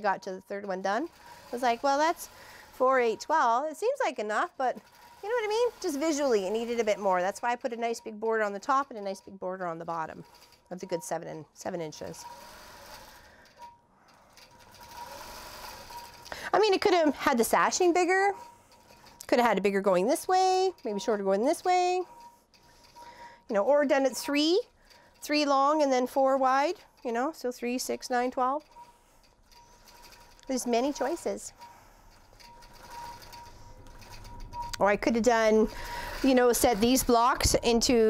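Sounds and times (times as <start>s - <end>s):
quilting machine humming: 0.0s - 38.0s
fast needle strokes: 0.7s - 13.6s, 14.3s - 23.2s, 23.9s - 38.0s.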